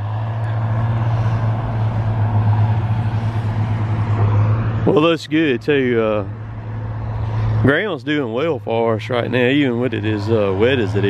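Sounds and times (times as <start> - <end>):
diesel engine low hum: 0.0 - 11.0.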